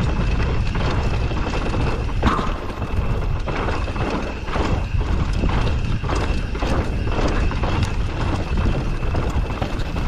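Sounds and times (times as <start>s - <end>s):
bike rattling over bumps: 0.0s - 10.0s
rumble of wind and tyres: 0.0s - 10.0s.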